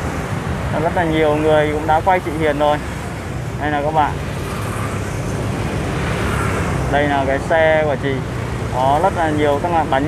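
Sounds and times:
road traffic rumble: 0:00.0 - 0:10.0.

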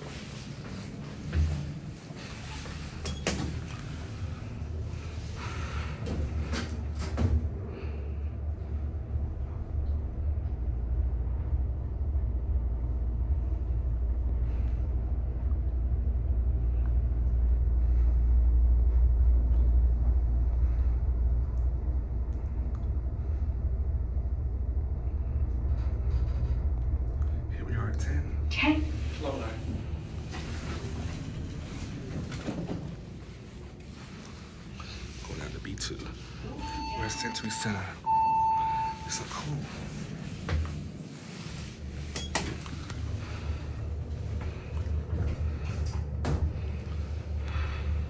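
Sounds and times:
elevator car rumbling: 0:00.0 - 0:48.0.

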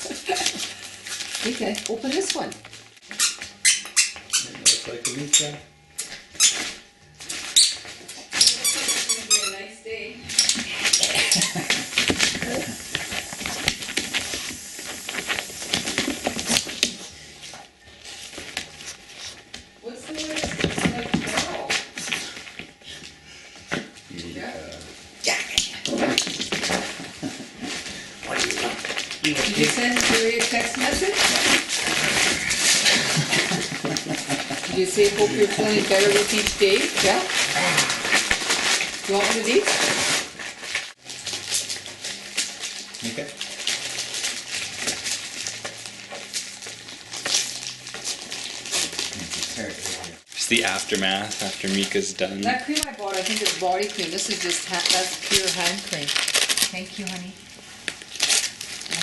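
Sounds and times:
wrapping paper crinkling and tearing: 0:00.0 - 0:05.6, 0:06.3 - 0:09.7, 0:10.3 - 0:23.2, 0:25.6 - 0:59.0.

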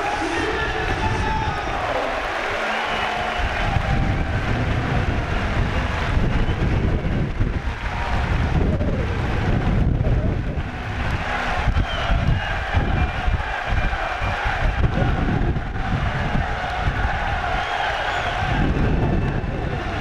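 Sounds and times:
indistinct crowd voices: 0:00.0 - 0:20.0
wind buffeting microphone: 0:03.1 - 0:20.0.

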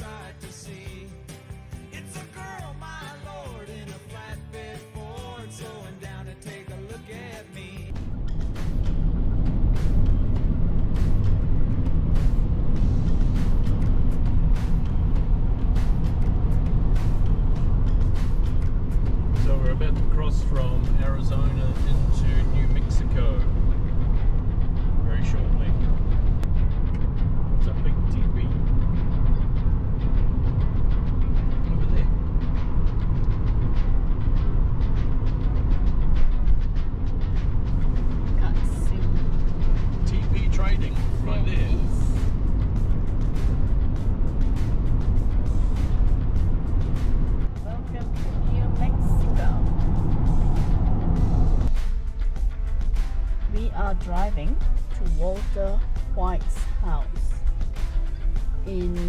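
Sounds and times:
road and wind noise inside car: 0:07.9 - 0:59.0.

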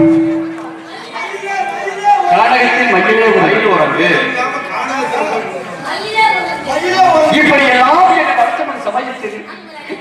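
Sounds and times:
actors speaking over microphones: 0:00.0 - 0:10.0.

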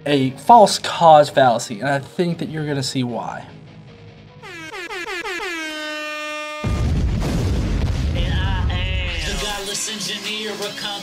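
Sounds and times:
stuttering horn-like tone: 0:04.4 - 0:07.0.

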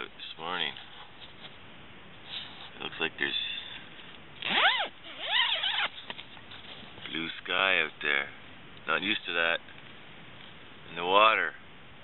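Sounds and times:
tent door zipper opening: 0:04.4 - 0:06.1.

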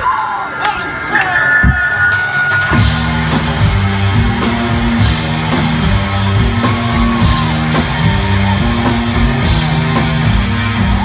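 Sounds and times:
rock band playing loud: 0:00.0 - 0:11.0.

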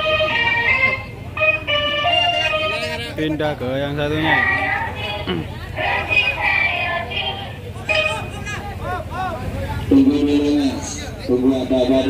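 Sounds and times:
music through small speaker: 0:00.0 - 0:03.0, 0:04.2 - 0:08.2.

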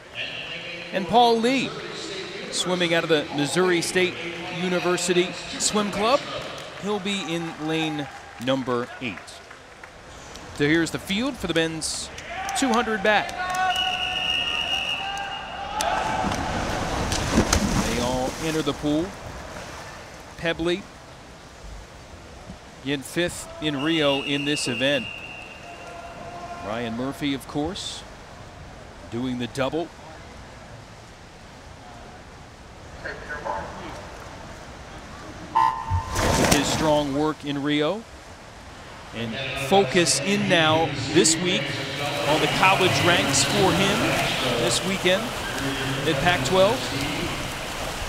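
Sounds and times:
man's voice: 0:00.0 - 0:09.4, 0:22.8 - 0:25.1, 0:36.5 - 0:38.1, 0:39.1 - 0:47.5
water splashing: 0:13.8 - 0:20.9, 0:35.3 - 0:38.1, 0:40.6 - 0:48.0
long steady tone: 0:35.5 - 0:36.3
electronic start beep: 0:35.6 - 0:36.2.

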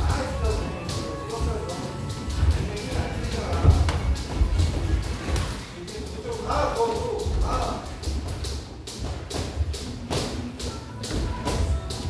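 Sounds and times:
background music: 0:00.0 - 0:12.0
footsteps on ring canvas: 0:01.3 - 0:05.6.

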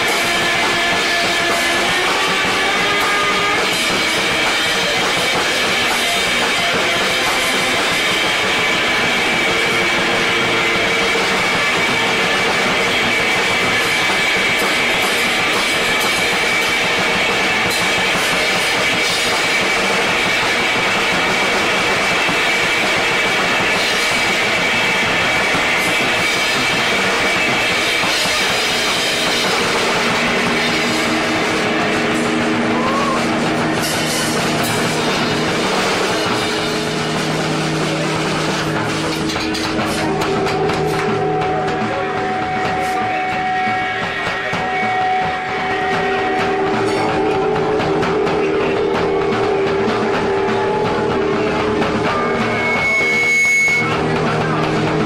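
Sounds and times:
drum kit playing: 0:00.0 - 0:55.0
high held tone: 0:00.0 - 0:55.0
noisy wall of guitar: 0:00.0 - 0:55.0.

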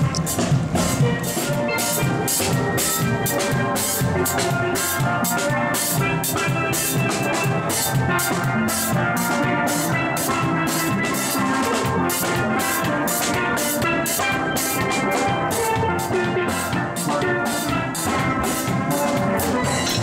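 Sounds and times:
drum kit beat with cymbals: 0:00.0 - 0:20.0
steel pans playing melody: 0:00.0 - 0:20.0.

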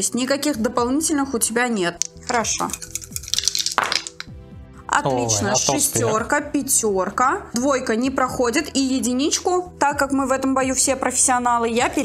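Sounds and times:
dice clattering in wooden tray: 0:02.0 - 0:04.3
dice shaken in hands: 0:02.0 - 0:04.3.

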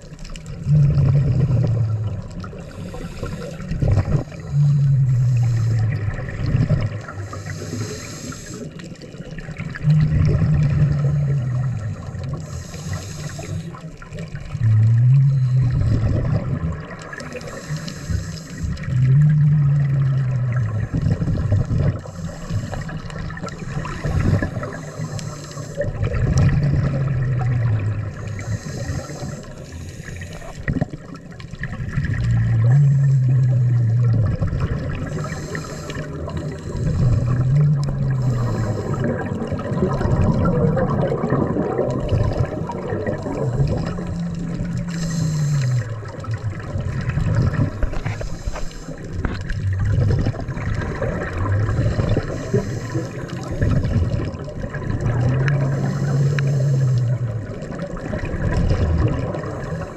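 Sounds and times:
muffled underwater bubbling: 0:00.0 - 0:59.9
low hum: 0:09.7 - 0:16.8, 0:31.6 - 0:57.7.

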